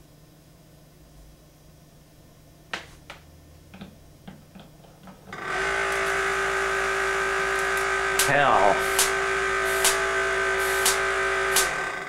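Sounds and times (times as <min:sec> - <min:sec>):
generator motor humming: 0:05.2 - 0:12.0
electric spark snap: 0:05.6 - 0:12.0.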